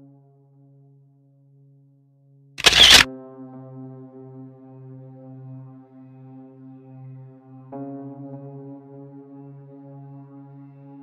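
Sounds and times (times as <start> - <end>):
click: 2.6 - 3.0.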